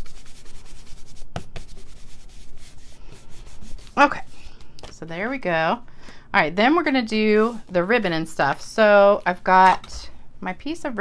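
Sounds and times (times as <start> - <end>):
palms rubbing card on mat: 0.0 - 4.6.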